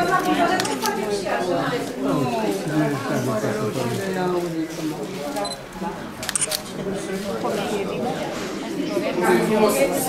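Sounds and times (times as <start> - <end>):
quiet talking: 0.0 - 10.0
camera shutter clicks: 6.2 - 6.6.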